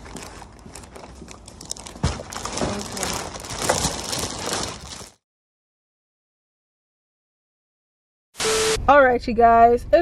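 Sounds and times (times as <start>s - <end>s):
plastic bag rustling: 0.0s - 5.2s.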